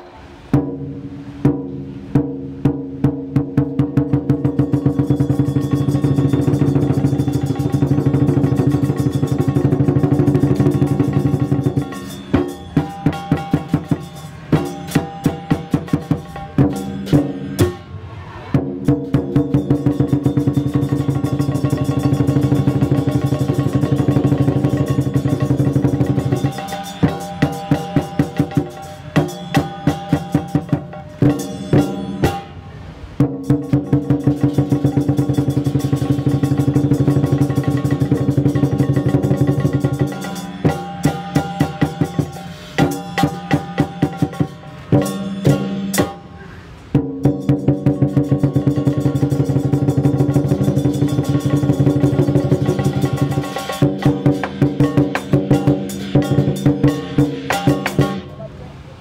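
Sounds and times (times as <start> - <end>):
big drum beating: 0.5 - 46.3, 46.9 - 58.3
ringing metal percussion: 2.8 - 58.5.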